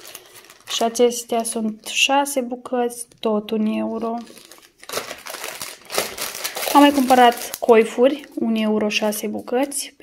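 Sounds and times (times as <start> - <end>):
plastic packaging crinkling: 0.0 - 2.1, 3.9 - 9.9.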